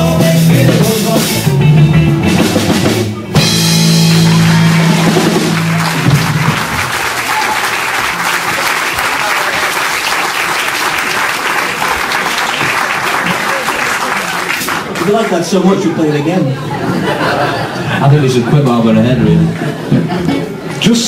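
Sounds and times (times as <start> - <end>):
band chord on electric guitars: 0.0 - 6.6
audience applause: 3.9 - 15.8.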